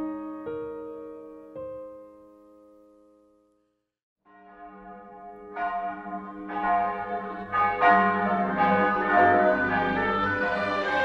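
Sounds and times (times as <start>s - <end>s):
music: 0.0s - 11.0s
bells ringing: 4.3s - 11.0s.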